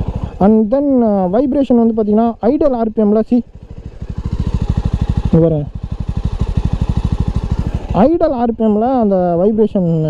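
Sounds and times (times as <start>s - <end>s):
motorcycle engine idling: 0.0s - 9.8s.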